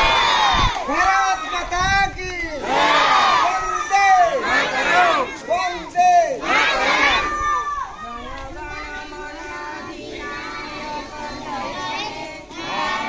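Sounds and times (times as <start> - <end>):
crowd chanting slogans: 0.0 - 1.0, 2.6 - 13.0.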